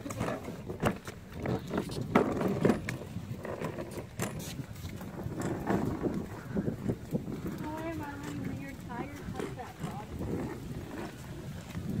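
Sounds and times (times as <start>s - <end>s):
plastic wheels rolling on concrete: 0.0s - 12.0s.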